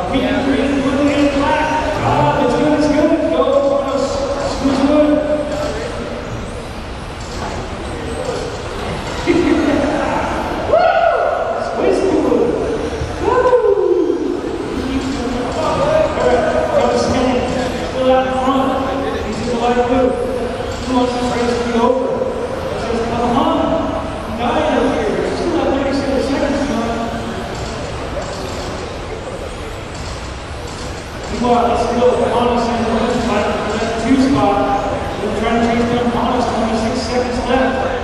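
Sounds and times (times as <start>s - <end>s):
announcer voice over a pa: 2.0s - 3.1s.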